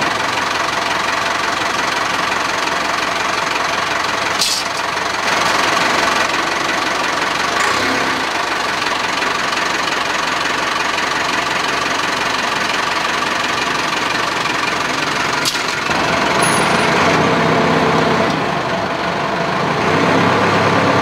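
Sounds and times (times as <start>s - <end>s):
wheel loader engine running: 0.0s - 21.0s.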